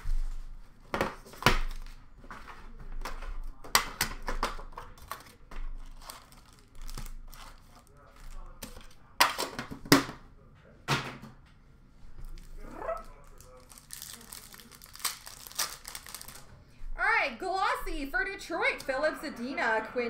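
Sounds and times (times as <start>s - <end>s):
foil wrappers crinkling and tearing: 4.9s - 8.9s, 12.3s - 16.5s.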